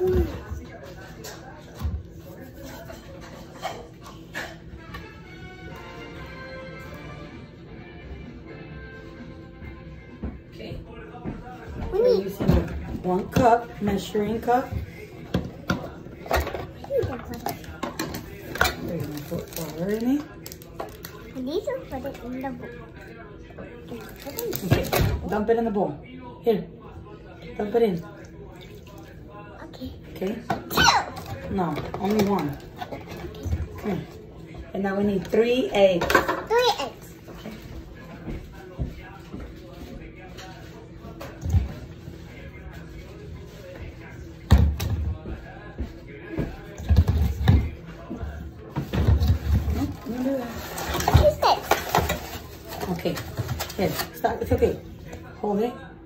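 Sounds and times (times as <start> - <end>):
child's voice: 11.8 - 12.5, 21.4 - 22.2, 36.4 - 37.1, 51.1 - 51.8.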